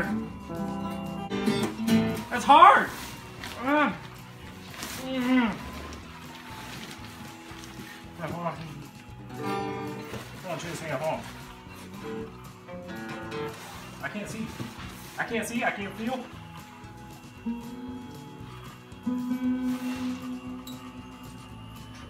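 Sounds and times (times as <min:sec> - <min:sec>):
acoustic guitar strummed out of tune: 0:00.0 - 0:22.0
people talking: 0:02.3 - 0:02.9, 0:10.4 - 0:11.2, 0:14.0 - 0:14.6, 0:15.2 - 0:16.3.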